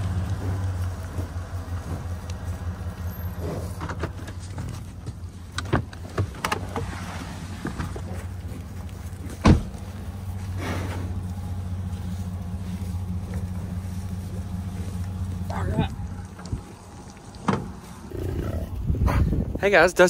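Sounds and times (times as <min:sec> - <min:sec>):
vehicle engine idling: 0:00.0 - 0:20.0.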